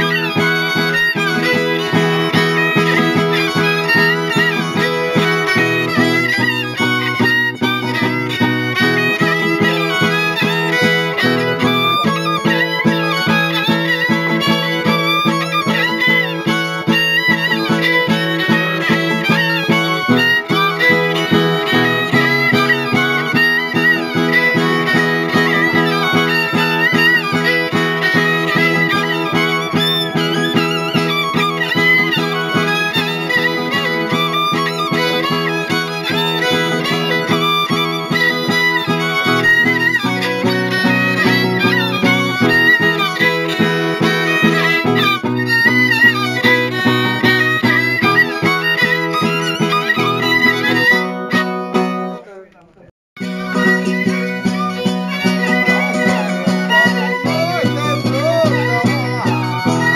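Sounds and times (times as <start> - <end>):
fiddle playing lively melody: 0.0 - 59.9
strummed string instrument: 0.0 - 59.9.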